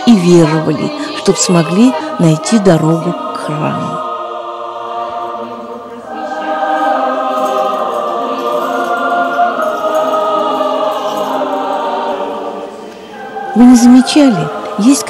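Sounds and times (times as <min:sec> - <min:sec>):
choir singing church chant: 0:00.0 - 0:15.0.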